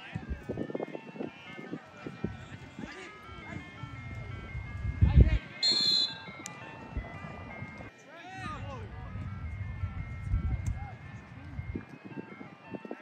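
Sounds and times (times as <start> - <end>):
spectators' voices: 0.0 - 13.0
shrill referee whistle blast: 5.6 - 6.3.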